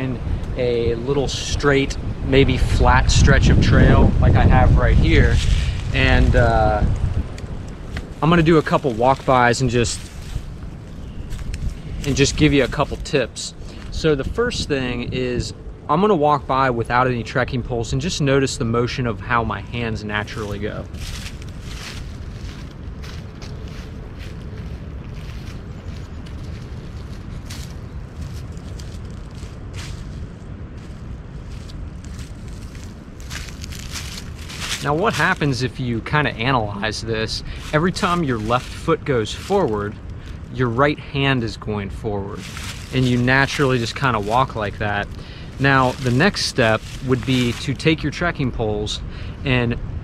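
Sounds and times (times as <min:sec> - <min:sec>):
low rumble: 0:00.0 - 0:17.3, 0:17.9 - 0:50.0
wind buffeting microphone: 0:00.0 - 0:50.0
footsteps crunching dry leaves: 0:04.3 - 0:14.0, 0:19.5 - 0:48.3.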